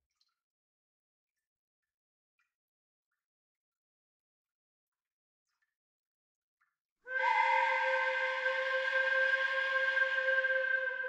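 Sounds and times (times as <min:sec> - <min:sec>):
steady whistle-like tone: 0:07.1 - 0:11.0.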